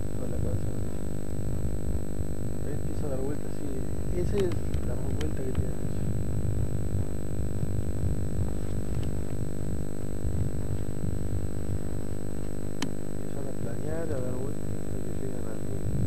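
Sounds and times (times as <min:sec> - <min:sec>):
low rumble with hum: 0:00.0 - 0:16.0
sharp click: 0:04.3 - 0:05.7.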